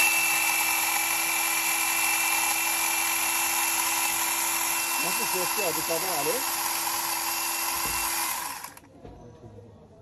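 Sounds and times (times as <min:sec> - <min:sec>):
electric chainsaw whining: 0:00.0 - 0:08.9.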